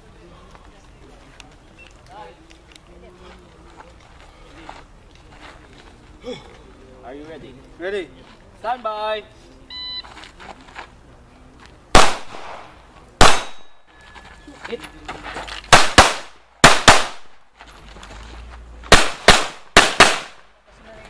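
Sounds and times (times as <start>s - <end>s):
handgun shots with echo: 12.0s - 13.8s, 15.7s - 17.3s, 18.9s - 20.4s.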